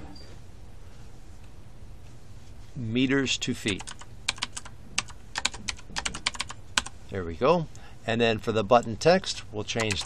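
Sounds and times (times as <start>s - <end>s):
computer keyboard typing: 3.6s - 6.9s, 9.7s - 10.0s.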